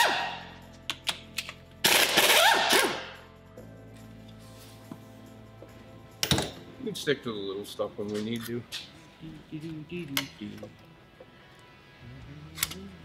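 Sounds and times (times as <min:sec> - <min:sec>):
pneumatic impact wrench: 0:01.8 - 0:03.1.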